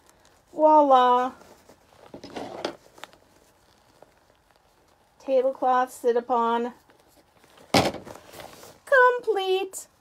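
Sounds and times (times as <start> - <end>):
crinkling newspaper cushion rustle: 0.0 - 10.0.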